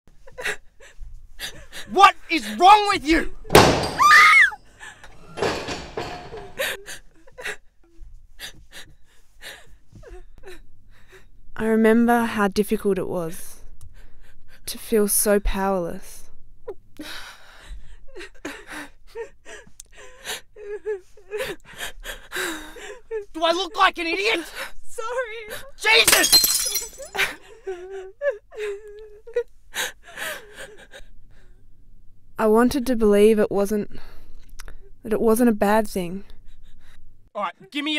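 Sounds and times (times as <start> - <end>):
something smashing and shattering: 25.9 - 27.3.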